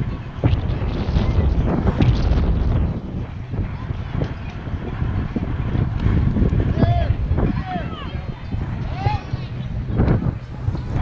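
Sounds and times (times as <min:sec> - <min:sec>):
wind rumbling on microphone: 0:00.0 - 0:11.0
spectators shouting: 0:06.7 - 0:09.6.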